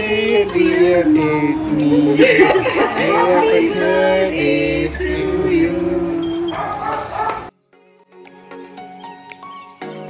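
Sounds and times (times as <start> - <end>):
high broken vocal sounds: 0.0 - 6.5
voices singing a held note: 0.0 - 6.6.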